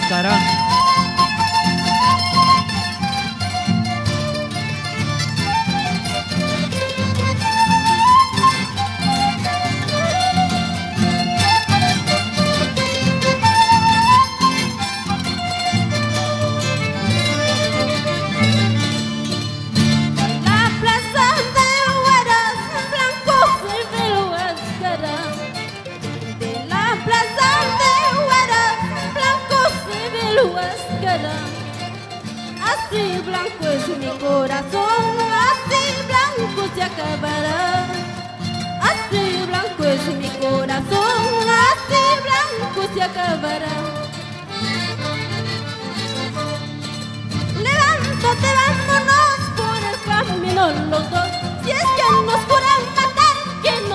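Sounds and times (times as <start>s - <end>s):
lead melody with vibrato: 0.0s - 53.9s
plucked strings: 0.0s - 53.9s
violin: 0.0s - 53.9s.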